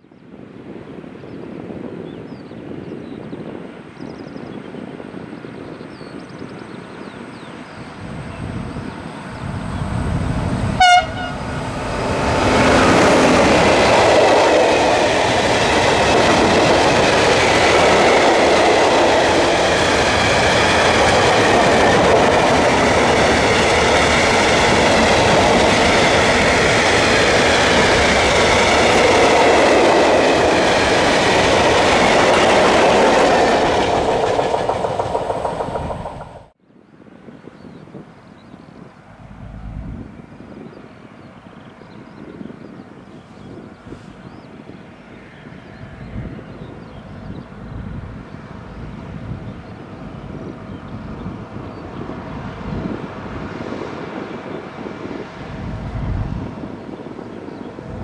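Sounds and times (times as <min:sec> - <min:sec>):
train wheels on rails: 0:07.9 - 0:36.6
train horn blast: 0:10.7 - 0:11.6.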